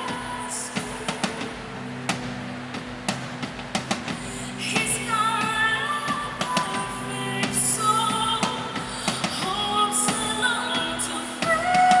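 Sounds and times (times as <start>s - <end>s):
band holding low chord: 0.0s - 7.8s.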